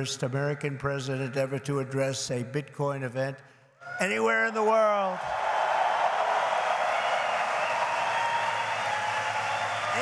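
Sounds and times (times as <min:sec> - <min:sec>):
crowd cheering: 0:03.8 - 0:10.0
audience applauding: 0:05.2 - 0:10.0.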